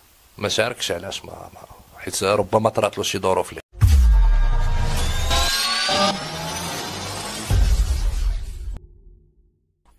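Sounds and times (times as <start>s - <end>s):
deep bass hit: 3.8s - 5.2s
rising whoosh with gliding tones: 5.0s - 8.5s.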